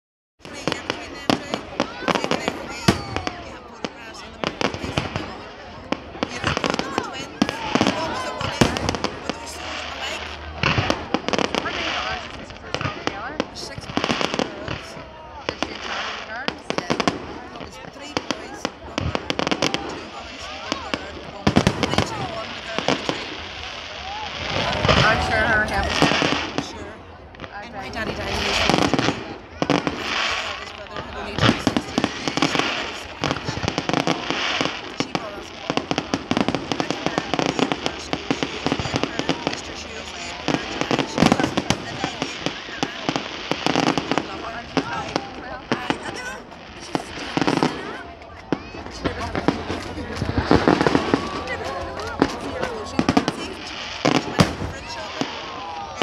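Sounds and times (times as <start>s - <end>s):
crowd talking: 0.4s - 56.0s
fireworks bangs and crackling: 0.4s - 56.0s.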